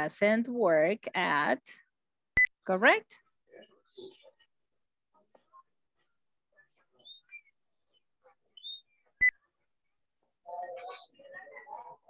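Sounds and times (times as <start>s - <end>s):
faint bird chirps: 6.5s - 9.5s, 10.4s - 12.0s.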